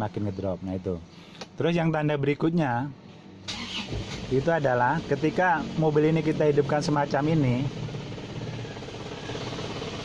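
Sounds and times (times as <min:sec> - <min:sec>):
diesel engine idling: 0:03.3 - 0:10.0.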